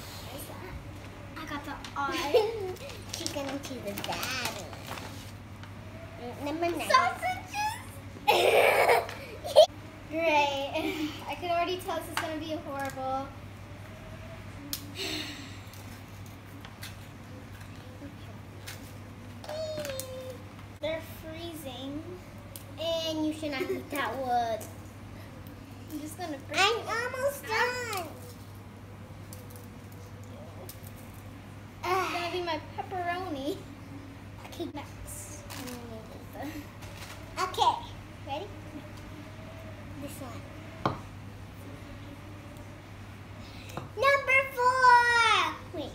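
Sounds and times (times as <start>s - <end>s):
food packaging rustling and clicking: 2.6s - 5.8s, 36.8s - 37.3s.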